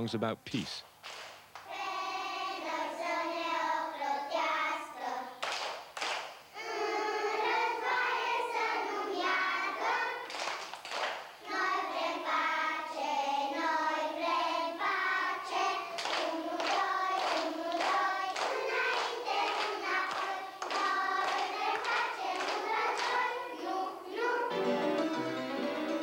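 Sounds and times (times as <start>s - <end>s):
girls singing together: 1.5s - 25.2s
keyboard music: 24.5s - 26.0s.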